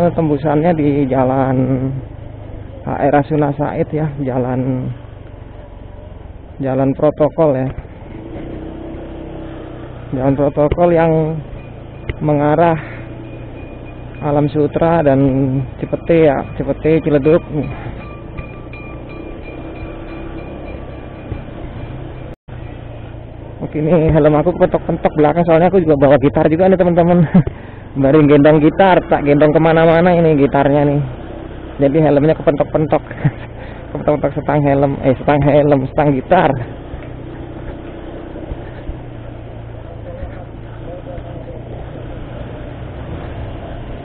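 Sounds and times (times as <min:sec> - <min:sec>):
motor scooter engine drone: 0:00.0 - 0:44.0
road and wind noise: 0:00.0 - 0:44.0.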